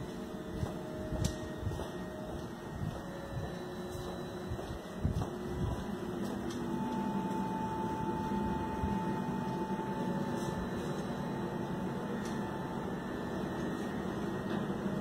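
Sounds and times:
thin steady tone: 0.0 - 15.0
ventilation hum: 0.0 - 15.0.

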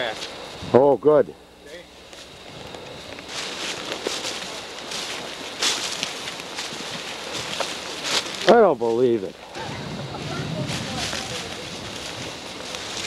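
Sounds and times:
footsteps through dry leaves: 2.0 - 13.0.

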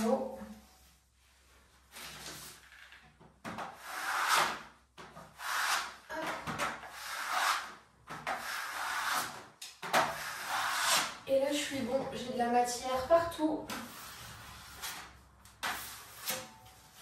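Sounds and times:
metal spatula scraping plaster: 3.6 - 11.2, 13.7 - 17.0.

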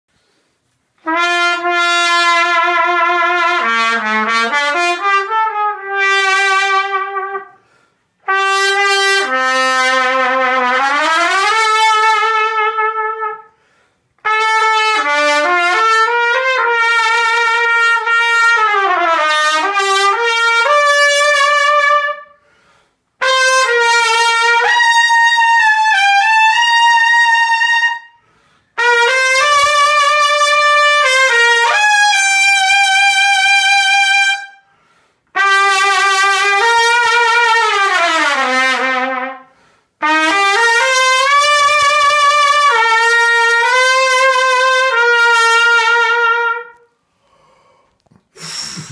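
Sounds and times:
solo trumpet playing runs: 1.0 - 7.6, 8.2 - 13.6, 14.2 - 22.4, 23.2 - 28.2, 28.8 - 34.7, 35.3 - 46.9.

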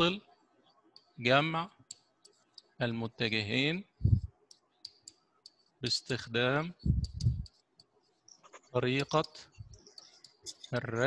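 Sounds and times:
man speaking: 0.0 - 0.2, 1.2 - 1.8, 2.8 - 4.0, 5.8 - 7.3, 8.8 - 9.5, 10.5 - 11.0.

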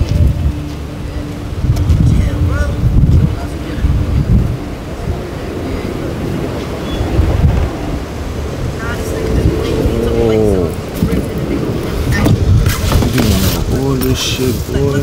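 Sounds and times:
street rumble: 0.0 - 15.0.

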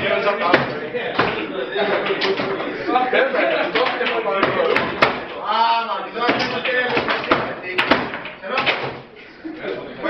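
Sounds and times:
foosball ball and rods knocking: 0.0 - 2.7, 3.6 - 5.4, 6.2 - 9.1
players' voices: 0.0 - 10.0.

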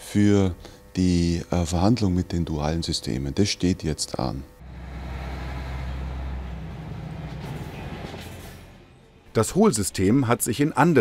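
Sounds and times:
diesel truck engine rumbling: 4.6 - 8.8.

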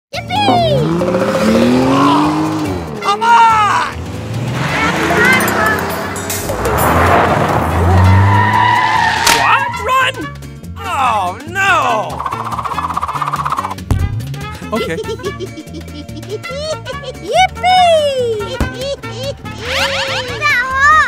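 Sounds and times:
wordless voices: 0.2 - 4.0, 4.6 - 6.0, 9.4 - 12.6, 14.6 - 21.0
cartoon racing car engine revving: 0.2 - 10.2, 11.8 - 13.8, 18.4 - 20.8
music: 1.7 - 21.0
tyres squealing: 4.6 - 10.2.

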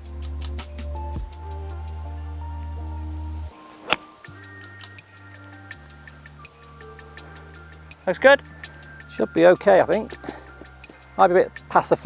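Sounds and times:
background music with ticking beat: 0.0 - 2.8, 3.5 - 12.0
golf club striking ball: 3.8 - 5.0.

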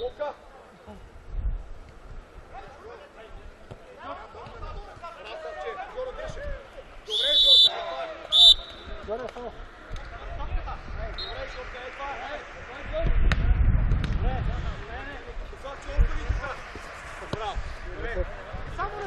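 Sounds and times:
players calling out: 3.7 - 12.9.

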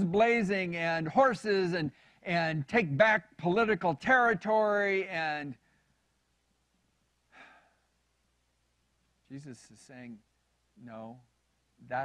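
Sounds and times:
man breathing softly: 2.0 - 2.3, 7.3 - 7.9.

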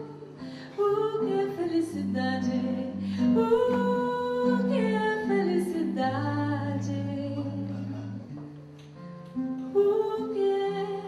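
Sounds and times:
woman singing bossa nova: 0.0 - 8.3, 9.6 - 11.0
nylon-string guitar: 0.0 - 11.0.

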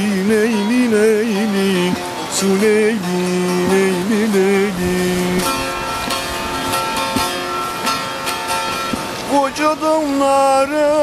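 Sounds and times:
plucked long-necked lute: 0.0 - 11.0.

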